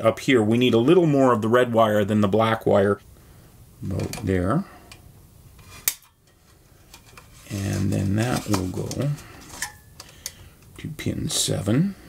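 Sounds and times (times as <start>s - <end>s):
faint handling of wires: 3.8s - 10.9s.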